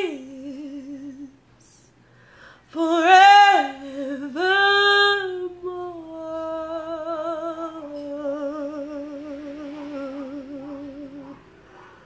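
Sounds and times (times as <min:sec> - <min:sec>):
woman singing a long note with vibrato: 0:00.0 - 0:01.4, 0:02.7 - 0:11.6.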